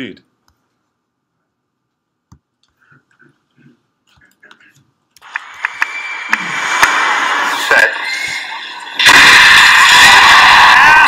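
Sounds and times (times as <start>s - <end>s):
crowd cheering loudly: 5.2s - 11.0s.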